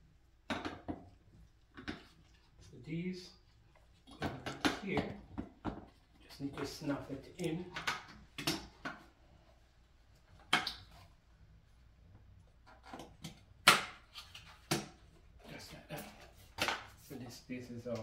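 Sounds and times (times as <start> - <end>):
person speaking: 2.6 - 3.5, 6.2 - 7.8, 17.0 - 18.0.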